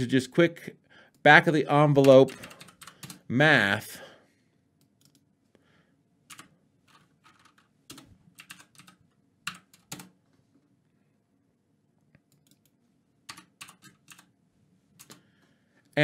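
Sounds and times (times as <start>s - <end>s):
computer keyboard typing: 2.0s - 3.3s, 4.8s - 5.2s, 6.3s - 10.2s, 12.3s - 14.3s.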